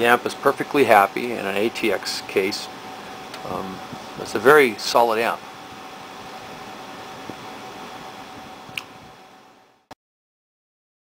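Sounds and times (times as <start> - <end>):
cooling fans whooshing: 0.0 - 9.8.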